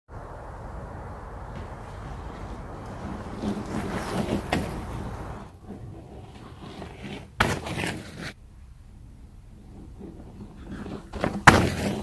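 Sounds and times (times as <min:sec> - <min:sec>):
faint outdoor background noise: 0:00.1 - 0:12.0
tyre skidding on dirt: 0:00.1 - 0:12.0.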